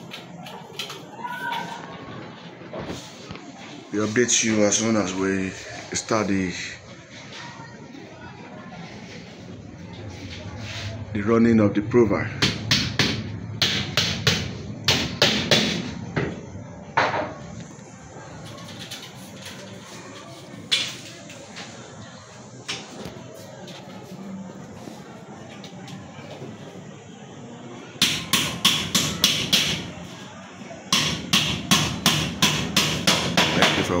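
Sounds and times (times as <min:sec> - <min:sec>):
hammer driving nails: 0:28.0 - 0:30.0, 0:30.9 - 0:33.9.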